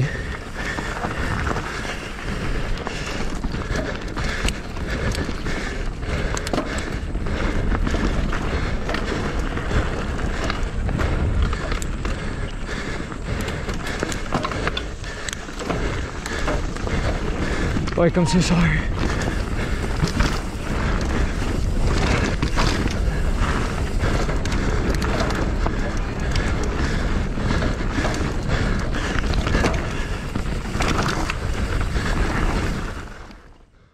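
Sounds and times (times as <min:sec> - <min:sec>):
bike clicks and rattles: 0:00.0 - 0:33.9
tyres rumbling on dirt and rock: 0:00.0 - 0:33.9.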